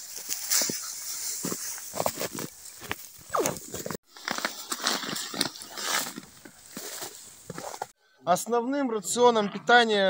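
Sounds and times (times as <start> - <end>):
dry hay rustling: 0.0 - 7.9.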